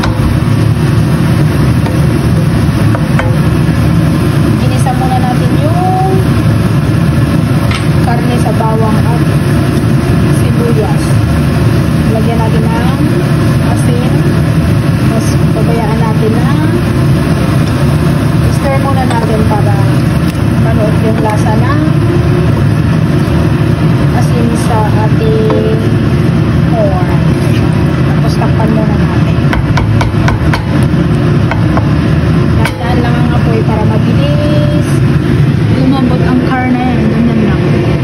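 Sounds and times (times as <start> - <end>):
steady low drone: 0.0 - 38.0
indistinct voices: 18.4 - 22.7, 24.1 - 26.0, 32.6 - 38.0.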